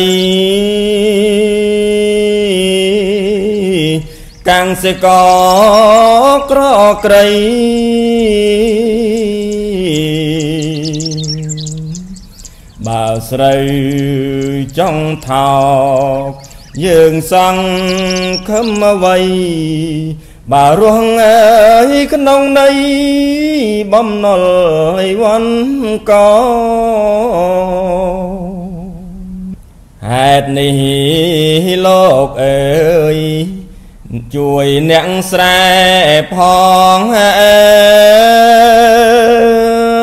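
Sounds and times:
birds chirping: 0.0s - 24.1s
monk chanting: 0.0s - 29.0s.

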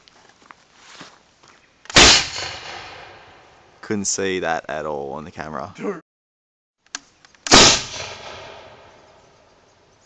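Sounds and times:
spud gun bang: 1.9s - 3.2s, 7.5s - 8.9s.

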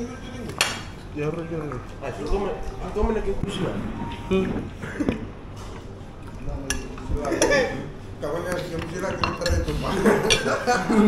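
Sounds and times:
cutlery and dish sounds: 8.5s - 10.6s.

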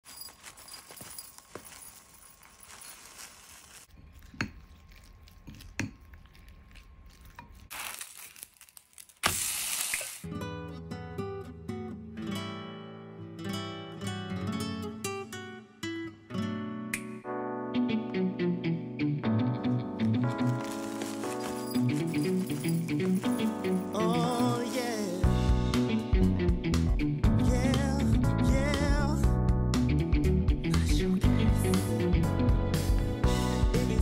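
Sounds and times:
acoustic guitar music: 10.2s - 34.0s.

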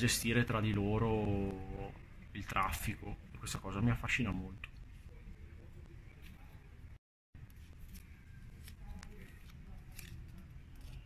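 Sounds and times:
paper strip crackling: 7.4s - 11.0s.

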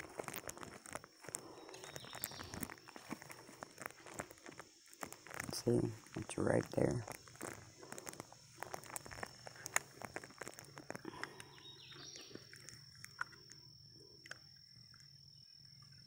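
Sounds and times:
rustling: 0.0s - 13.6s
high insect trill: 0.0s - 16.0s
faint chirps: 0.3s - 16.0s.

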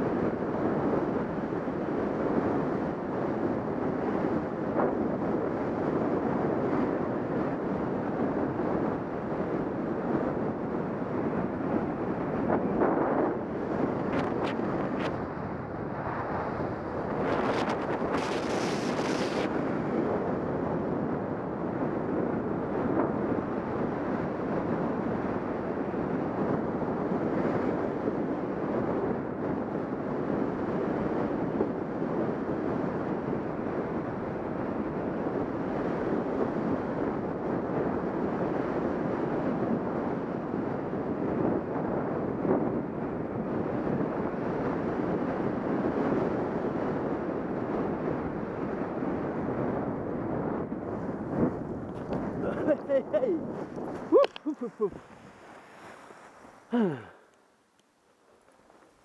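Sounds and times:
wind noise on microphone: 0.0s - 59.0s.

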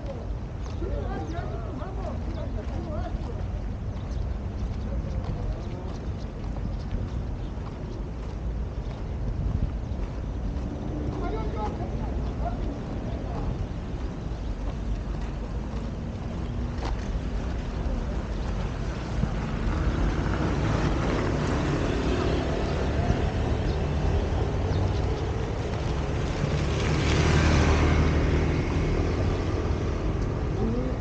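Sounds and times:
city traffic rumble: 0.0s - 31.0s.

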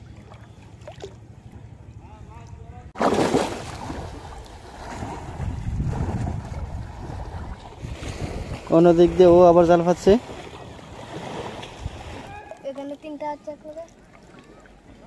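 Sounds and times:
splashing through pond water: 0.0s - 1.2s, 2.9s - 8.7s
wind rumbling on microphone: 3.8s - 10.3s, 11.4s - 12.4s.

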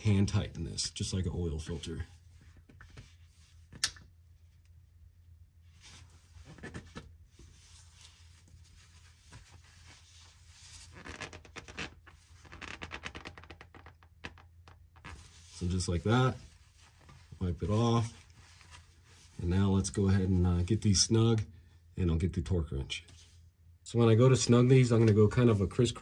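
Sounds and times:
hands rubbing with towel: 15.0s - 19.5s.

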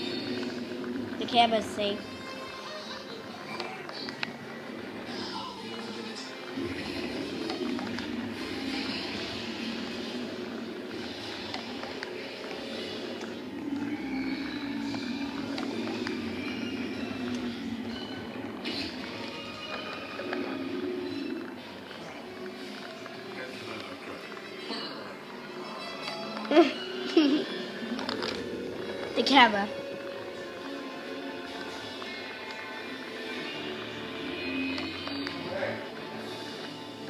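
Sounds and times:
film soundtrack from television: 0.0s - 37.0s.

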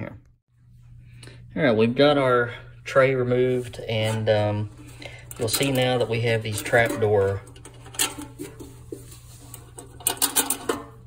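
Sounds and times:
metallic clicks and rattles: 5.1s - 8.7s, 9.6s - 11.0s.

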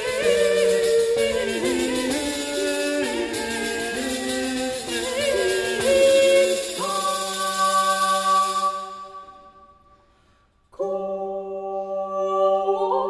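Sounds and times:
woman singing: 0.0s - 9.2s, 10.8s - 13.0s.

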